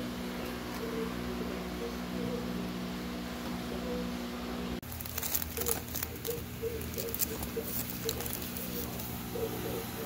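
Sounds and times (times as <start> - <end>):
plastic comic bags rustling: 4.8 - 9.2.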